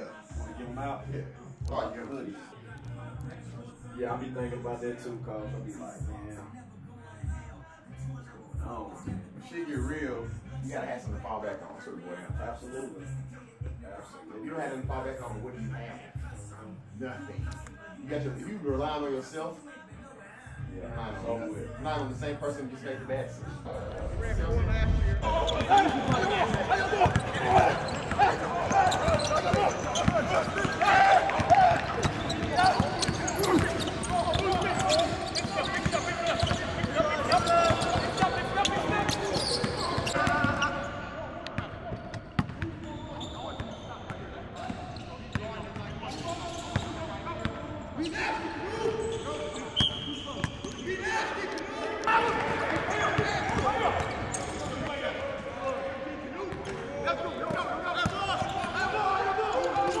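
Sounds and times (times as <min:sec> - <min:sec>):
players calling out: 0:23.6 - 1:00.0
sneaker squeaks: 0:25.5 - 0:41.0, 0:41.6 - 0:51.2, 0:52.0 - 0:55.1.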